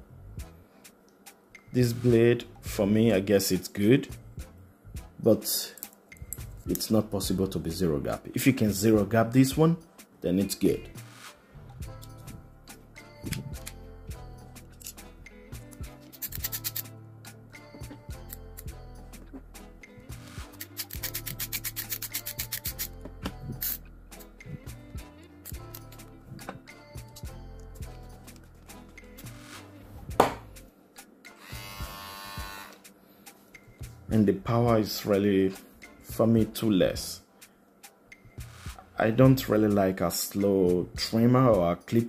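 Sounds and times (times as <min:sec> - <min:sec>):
background music: 0:00.0 - 0:42.0
screwdriver ratchet clicking: 0:16.1 - 0:16.9, 0:20.6 - 0:23.0.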